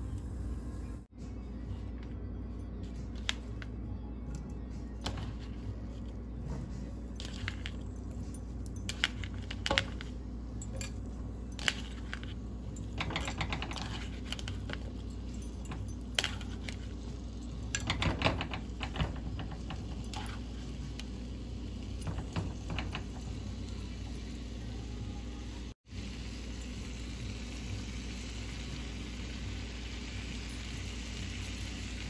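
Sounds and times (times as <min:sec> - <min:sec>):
potatoes clattering into a pan: 0:12.9 - 0:14.9.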